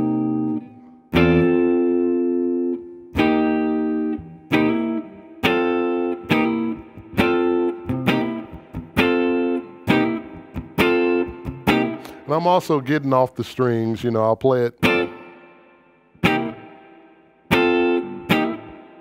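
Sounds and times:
electric guitar strumming blues chords: 0.0s - 19.0s.

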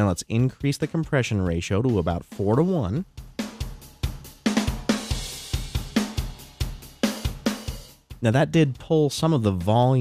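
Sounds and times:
drum kit beat: 0.0s - 10.0s.

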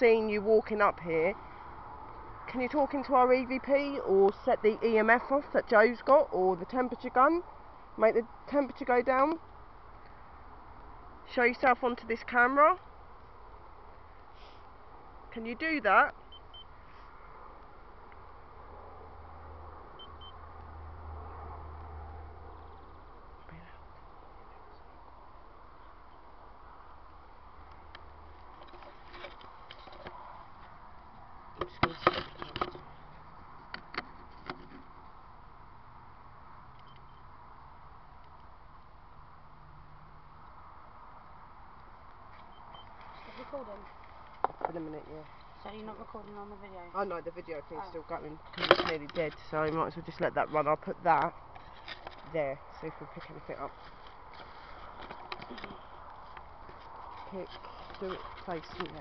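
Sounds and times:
faint outdoor hiss: 0.0s - 59.0s
leaves rustling against camera: 22.4s - 35.6s, 40.4s - 59.0s
camera handling knocks and scrapes: 31.6s - 32.9s, 33.6s - 34.9s.

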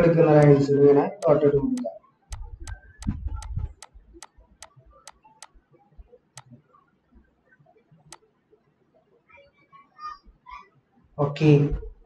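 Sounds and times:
sharp computer input clicks: 1.2s - 5.6s.

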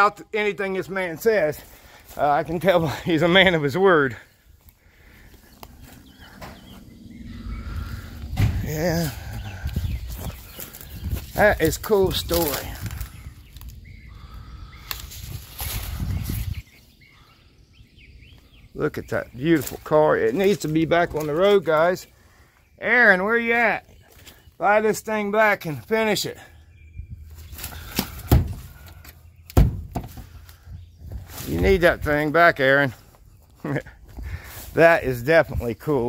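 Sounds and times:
faint bird chirps: 4.2s - 11.3s
wind buffeting microphone: 5.0s - 18.8s, 26.7s - 28.8s, 29.8s - 32.2s
dull thumps: 8.2s - 8.9s, 27.8s - 30.4s.

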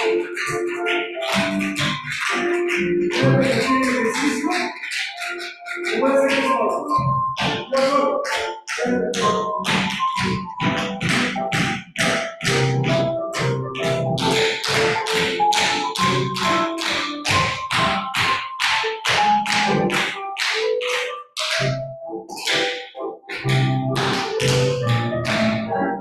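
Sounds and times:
background music: 0.0s - 26.0s
tap shoes on hard floor: 0.1s - 21.8s, 22.4s - 25.7s.

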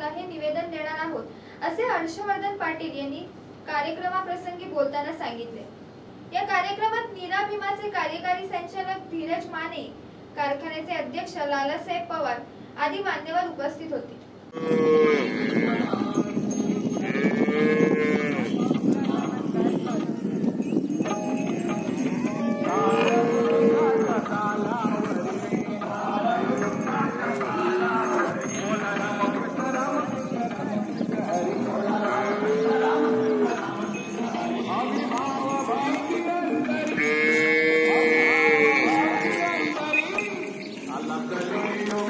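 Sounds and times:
animal noise: 14.6s - 15.9s
cattle mooing: 14.6s - 15.9s, 17.1s - 18.6s, 22.2s - 24.2s, 32.0s - 34.1s, 36.9s - 40.2s
bells ringing: 14.6s - 42.0s.

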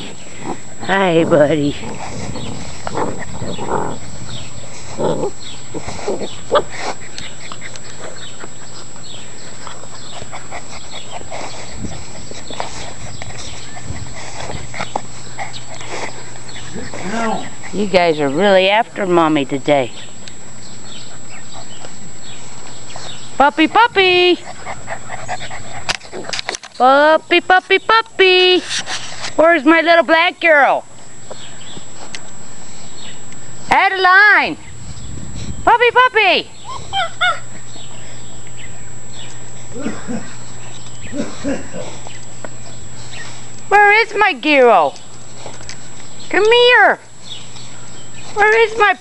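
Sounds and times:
puppy vocal sounds: 0.0s - 19.0s, 24.3s - 26.6s, 36.6s - 38.6s.

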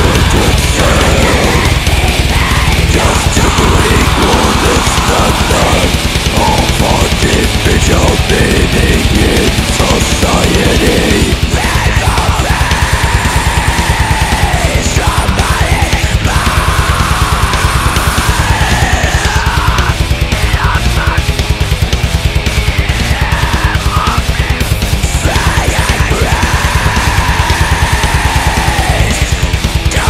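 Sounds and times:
distorted metal guitars: 0.0s - 30.0s
melodic death metal music: 0.0s - 30.0s
rapid kick drum beats: 0.0s - 30.0s.

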